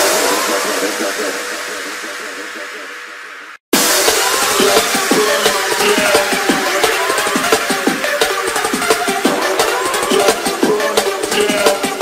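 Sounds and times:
filtered noise wash: 0.0 - 12.0.

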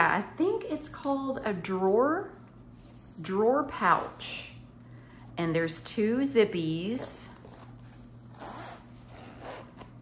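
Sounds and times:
zipper being pulled: 7.4 - 10.0.

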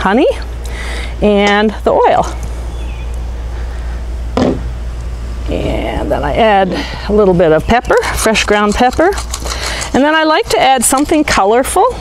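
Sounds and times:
low outdoor rumble: 0.0 - 12.0
short knock: 4.4 - 4.7.

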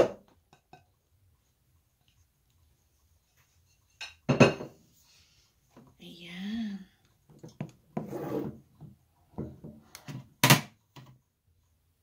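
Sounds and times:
ceramic dish knocking on hard surface: 4.3 - 4.8.

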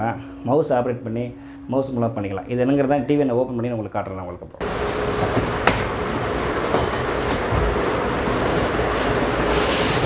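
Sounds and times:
cardboard and polystyrene scraping: 4.6 - 5.6, 7.4 - 10.0.

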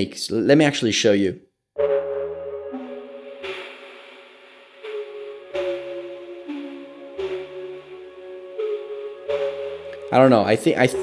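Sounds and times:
low synth note: 1.8 - 10.2
synth chords: 1.8 - 11.0.

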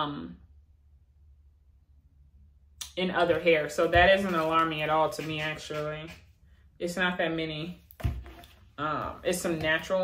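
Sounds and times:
person speaking: 2.8 - 6.2.

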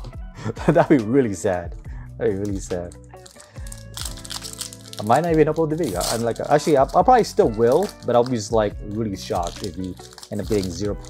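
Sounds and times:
background music: 0.0 - 11.0
foil wrapper crinkling: 2.4 - 11.0.

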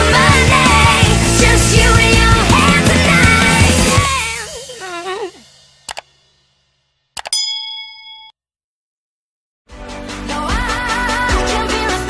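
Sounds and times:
music: 0.0 - 7.1, 9.7 - 12.0
notification bell ding: 7.2 - 8.4.

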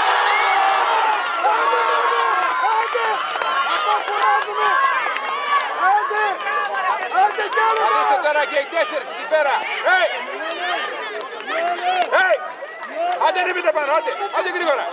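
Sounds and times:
high voices shouting and cheering: 0.0 - 14.9.

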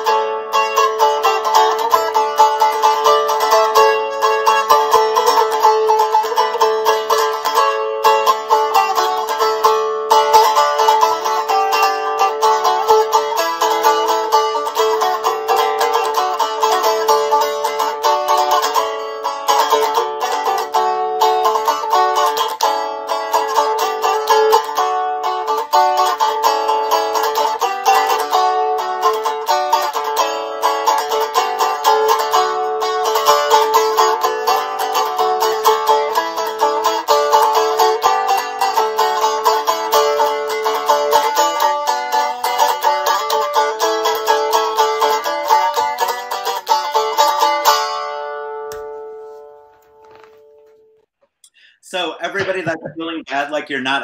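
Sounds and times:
strummed string instrument tune: 0.0 - 54.0.

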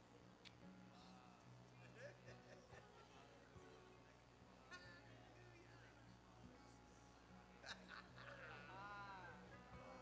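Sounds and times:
faint background music: 0.0 - 10.0
low hum of sound system: 0.0 - 10.0.

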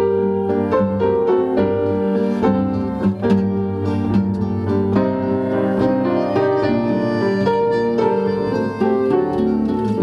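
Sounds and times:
piano: 0.0 - 10.0
accordion playing chords: 4.7 - 10.0.

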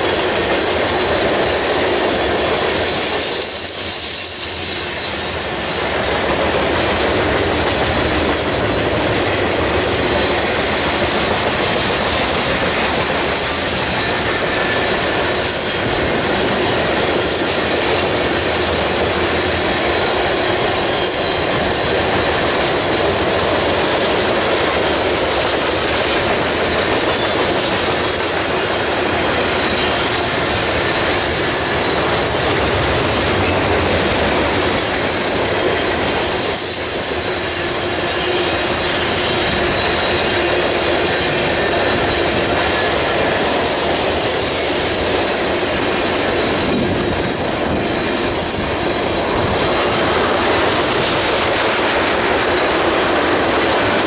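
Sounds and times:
train wheels clacking on rails: 0.0 - 54.0.

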